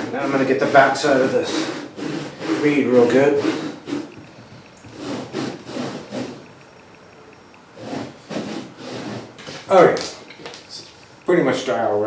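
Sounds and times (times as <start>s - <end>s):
rag rubbing metal wheel: 0.0s - 7.0s, 7.8s - 9.7s.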